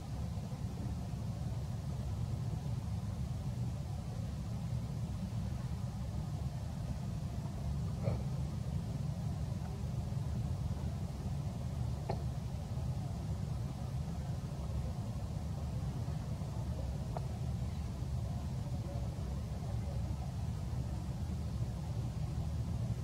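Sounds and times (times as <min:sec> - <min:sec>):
low background rumble: 0:00.0 - 0:23.0.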